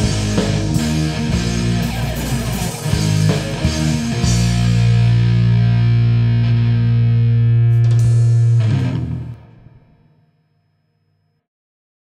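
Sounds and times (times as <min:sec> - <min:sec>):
drum and cymbal hits: 0:00.0 - 0:05.4, 0:07.7 - 0:09.2
bass guitar: 0:00.0 - 0:10.0
distorted electric guitar chord: 0:00.0 - 0:10.3.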